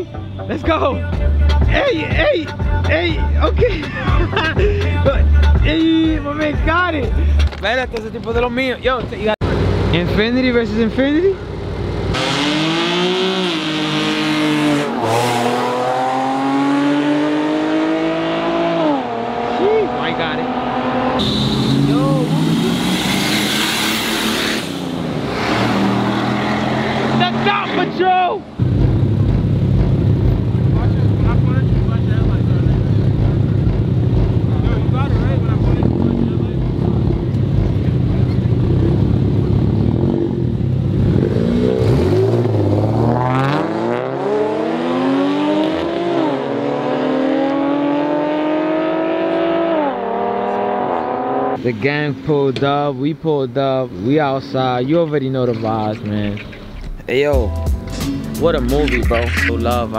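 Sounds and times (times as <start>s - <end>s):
race car engines accelerating: 9.4s - 52.7s
loud rushing noise: 20.2s - 32.2s.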